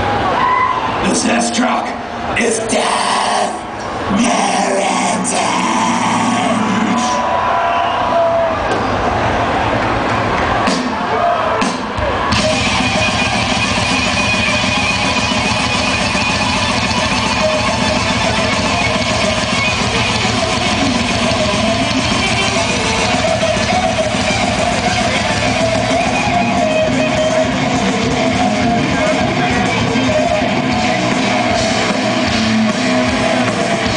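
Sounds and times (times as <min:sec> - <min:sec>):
metal band playing live: 0:02.6 - 0:07.2, 0:11.6 - 0:33.9.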